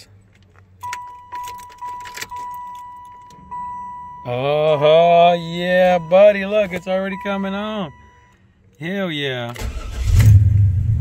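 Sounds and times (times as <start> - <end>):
car warning chime: 0.8 - 9.4.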